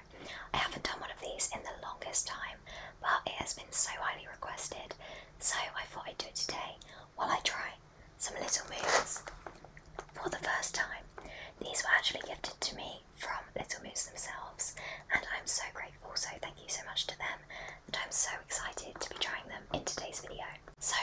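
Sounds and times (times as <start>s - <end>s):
woman whispering: 0.0s - 9.3s, 10.2s - 21.0s.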